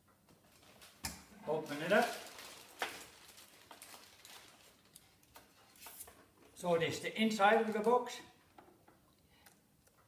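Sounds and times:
plastic bag rustling: 0.4 - 6.1, 7.3 - 8.2.

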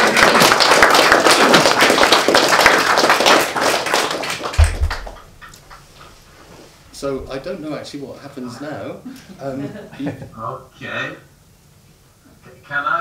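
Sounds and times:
audience applauding: 0.0 - 5.9
short low thump: 4.6 - 5.4.

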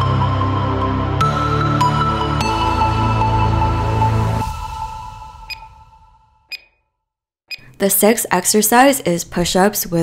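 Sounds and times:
background music: 0.0 - 6.6
short high timer beeps: 6.5 - 6.8.

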